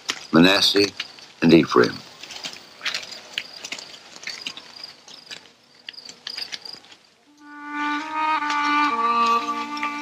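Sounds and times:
insects chirping in a high trill: 0.0s - 10.0s
light clicks and ticks: 2.2s - 7.5s.

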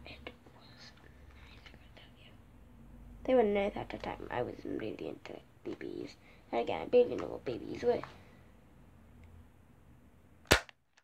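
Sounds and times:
faint whispering: 0.0s - 2.4s.

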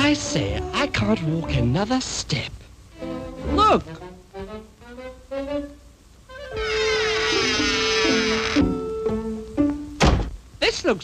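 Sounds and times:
orchestral strings: 2.9s - 5.8s.

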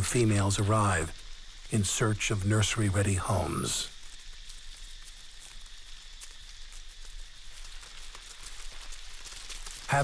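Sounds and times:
crabs scuttling over leaf litter: 0.0s - 10.0s.

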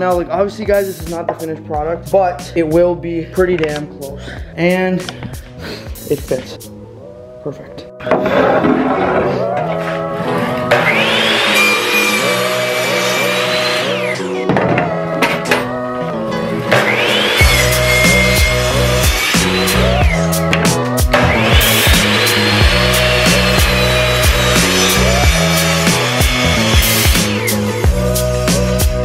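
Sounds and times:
background music with steady beat: 0.0s - 29.0s
miter saw cutting wood: 8.2s - 14.5s, 16.5s - 28.0s.

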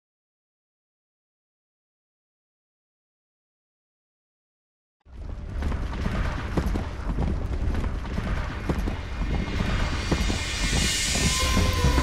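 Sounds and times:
deep rumbling drone: 5.1s - 12.0s
documentary score music: 5.1s - 12.0s
rising hiss-like swell: 9.2s - 12.0s.

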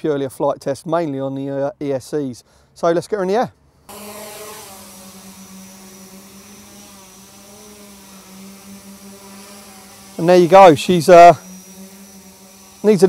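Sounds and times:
drone motors buzzing: 3.9s - 13.0s.

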